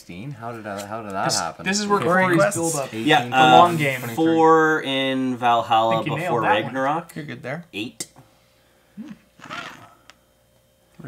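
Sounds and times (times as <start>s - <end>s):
murmured voice: 9.0s - 9.2s.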